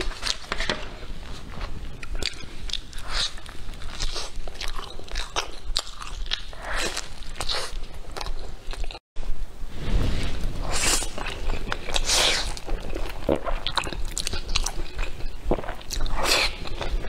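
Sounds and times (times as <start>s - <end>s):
crunchy chewing: 0.0s - 9.0s, 10.6s - 17.0s.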